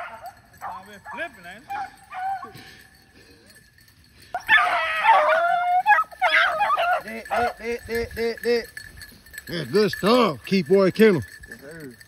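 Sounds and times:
hound baying: 0.0 - 7.9.

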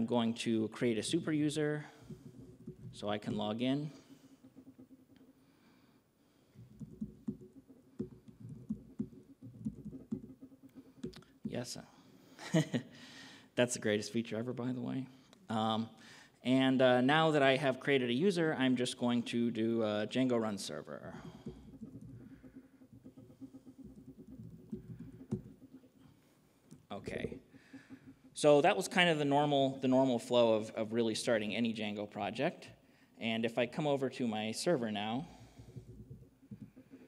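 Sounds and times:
low steady hum: 0.0 - 37.0
typing on a laptop keyboard: 6.4 - 12.4, 20.1 - 28.3, 35.4 - 37.0.

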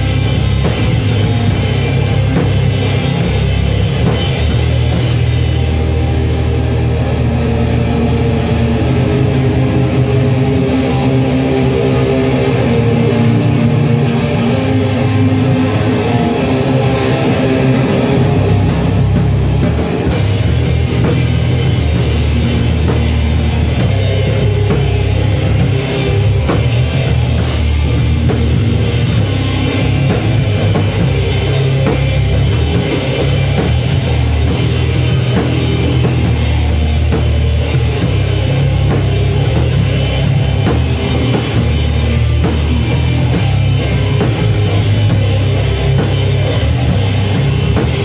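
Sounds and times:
drum and cymbal hits: 0.0 - 7.2, 9.6 - 48.0
bass guitar: 0.0 - 48.0
electric guitar: 0.0 - 48.0
live rock band: 0.0 - 48.0.

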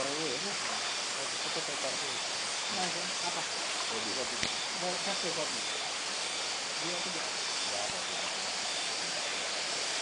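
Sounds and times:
water running over pebbles: 0.0 - 10.0.

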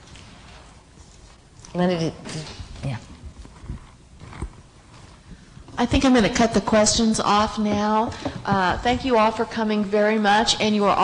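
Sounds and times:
soft low thumps: 3.2 - 9.4.

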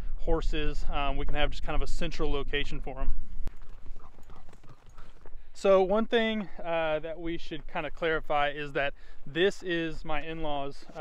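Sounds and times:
footfalls on dry ground: 3.5 - 5.5.

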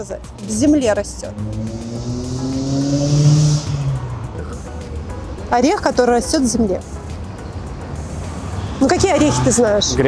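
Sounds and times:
low street rumble: 0.0 - 10.0
car engine accelerating: 0.4 - 5.5.

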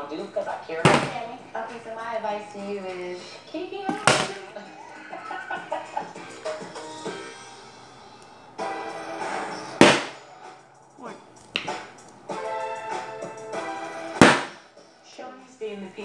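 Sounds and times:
voices: 0.0 - 5.8
background music: 0.0 - 16.0.

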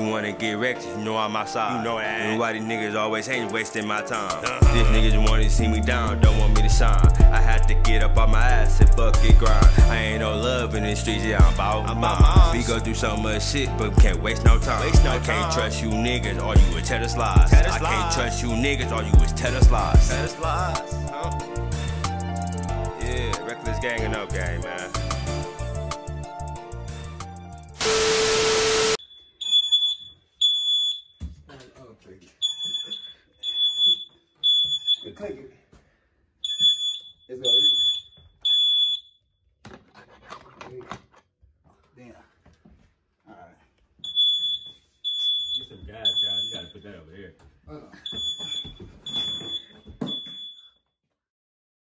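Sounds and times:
tv static hiss: 27.8 - 29.0
smoke alarm beeping: 27.8 - 31.2, 32.4 - 35.2, 36.4 - 39.2, 44.0 - 46.9, 48.0 - 50.8.

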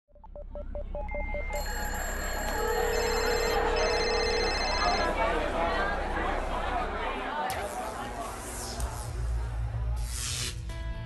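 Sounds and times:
steady electronic tones: 0.1 - 6.2.

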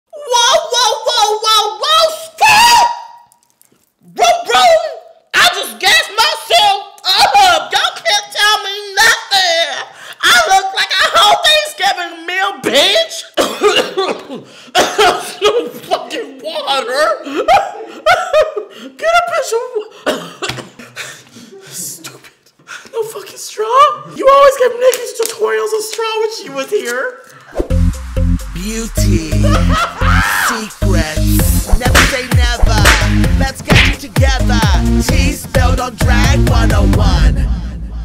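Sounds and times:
person coughing: 13.4 - 15.8, 20.0 - 21.0
throaty vocal noises: 28.6 - 38.0.

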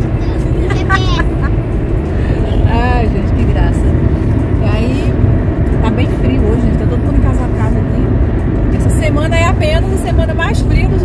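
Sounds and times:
people talking: 0.0 - 1.5, 2.4 - 4.0, 4.6 - 5.2, 5.8 - 8.1, 8.8 - 11.0
car road and engine rumble: 0.0 - 11.0.

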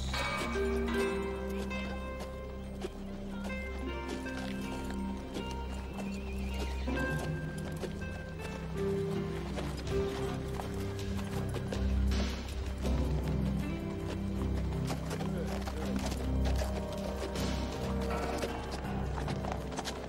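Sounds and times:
film score music: 0.0 - 20.0
hooves clip-clopping on dirt: 0.0 - 20.0.

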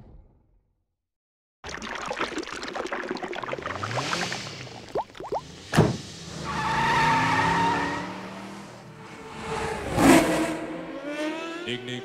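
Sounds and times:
tire squeal screech: 6.1 - 11.7.

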